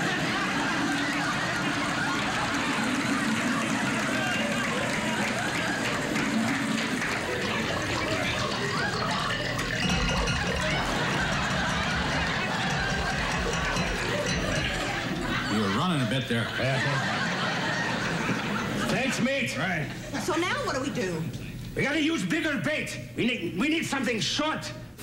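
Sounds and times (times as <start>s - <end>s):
audience laughing: 0.0s - 21.0s.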